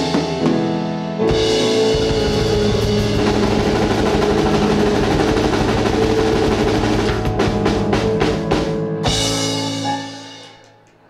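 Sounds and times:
drum kit steady beat: 0.0 - 10.6
electric keyboard: 0.0 - 11.0.

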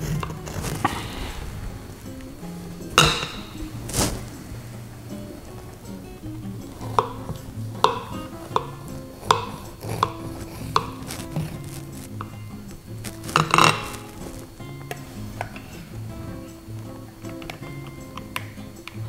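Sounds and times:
pie server scraping: 0.0 - 19.0
soft background music: 0.0 - 19.0.

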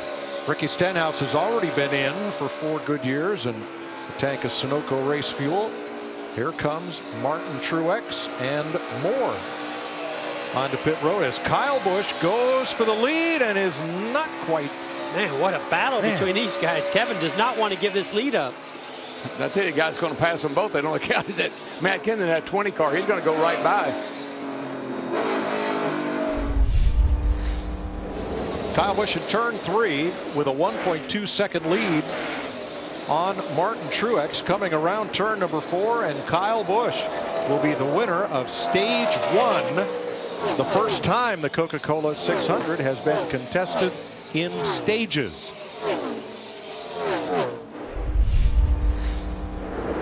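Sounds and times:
race car engine at speed: 0.0 - 50.0
race car passing: 22.9 - 31.1, 45.6 - 50.0
deep boom and whoosh effect: 26.3 - 28.8, 47.8 - 50.0
held synth tones: 26.3 - 29.3, 47.9 - 50.0.

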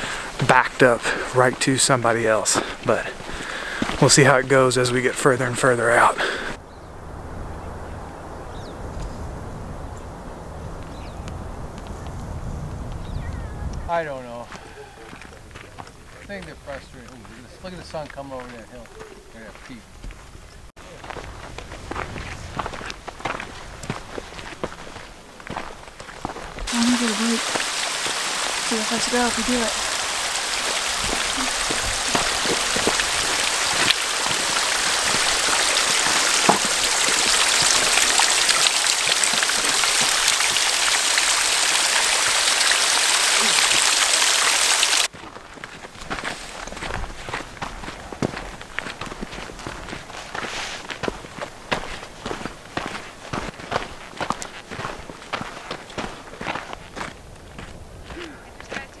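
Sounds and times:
footsteps on trail: 0.0 - 6.6, 14.3 - 43.5, 45.0 - 59.0
water trickling off rock: 26.7 - 45.1.

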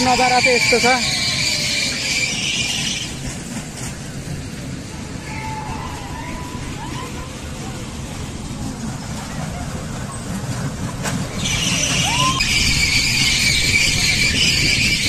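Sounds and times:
high-pitched screaming: 0.0 - 3.2, 11.4 - 15.0
low rumble of wind and ride: 0.0 - 15.0.

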